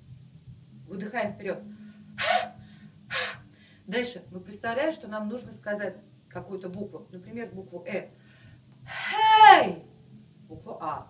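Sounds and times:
woman's sharp forceful breaths: 1.8 - 3.9.

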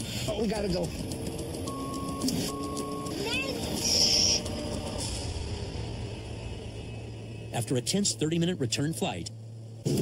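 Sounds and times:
light plane engine and propeller: 0.0 - 10.0
short steady beeps: 1.6 - 3.4.

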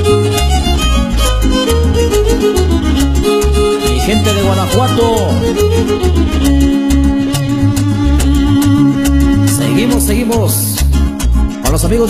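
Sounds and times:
violin with sliding notes: 0.0 - 11.0
pulsing bass: 0.0 - 12.0
strummed guitars: 0.0 - 12.0.

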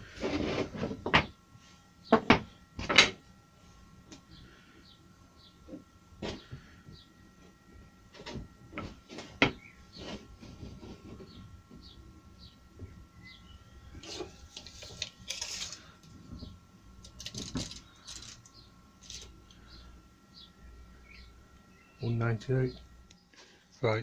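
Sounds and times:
wood scraping over bench: 0.0 - 1.3, 8.1 - 12.0, 14.0 - 16.5.

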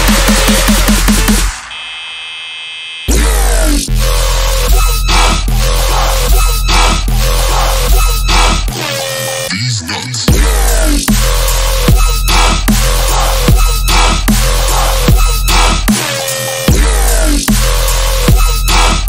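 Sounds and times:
dubstep electronic music: 0.0 - 19.0.

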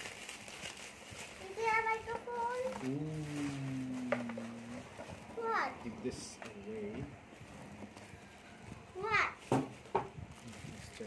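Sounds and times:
bubble wrap rustling: 0.0 - 11.0.

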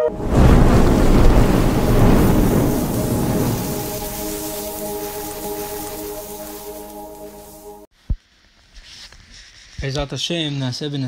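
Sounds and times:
deep thunder-like rumble: 0.0 - 7.5
sustained chord of steady tones: 0.0 - 7.9.

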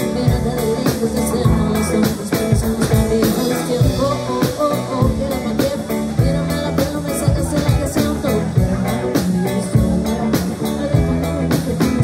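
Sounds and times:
drum kit beat: 0.0 - 12.0
electric bass: 0.0 - 12.0
electric guitars: 0.0 - 12.0.

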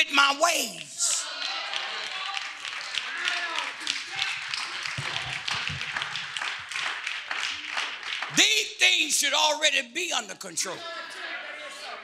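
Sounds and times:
hand claps: 0.6 - 8.6.

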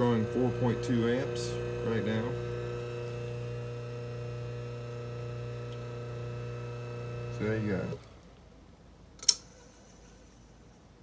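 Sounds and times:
low room noise: 4.8 - 11.0
sharp metallic click: 9.2 - 9.6.

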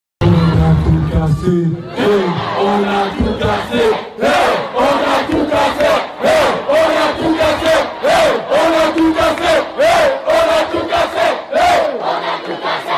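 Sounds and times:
men chanting in unison: 1.9 - 12.9.

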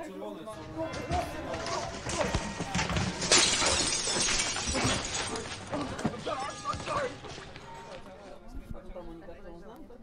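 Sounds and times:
glass shattering: 0.9 - 7.7.

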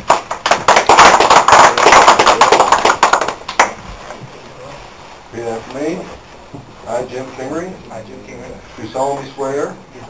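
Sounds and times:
group clapping: 0.0 - 3.8.

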